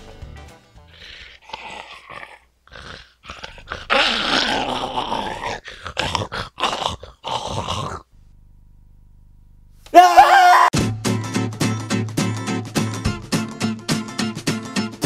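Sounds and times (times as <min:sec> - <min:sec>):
person growling like zombie: 0:01.0 - 0:08.1, 0:09.9 - 0:10.7.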